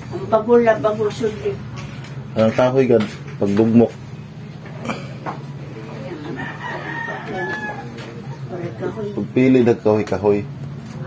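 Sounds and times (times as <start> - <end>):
rooster crowing: 6.0 - 8.5.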